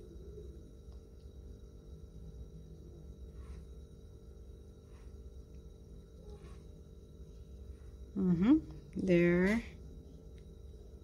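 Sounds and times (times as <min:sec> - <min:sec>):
low background hum: 0:00.0 - 0:11.0.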